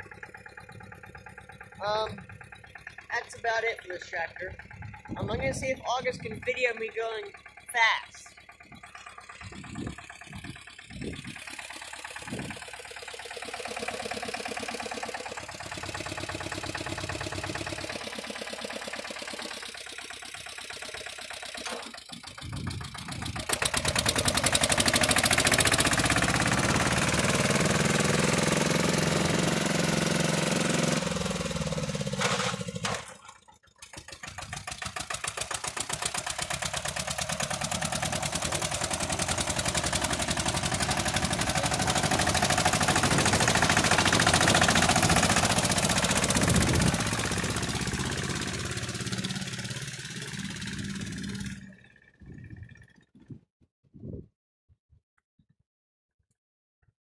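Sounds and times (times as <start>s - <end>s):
tractor diesel engine revving: 0.0s - 53.1s.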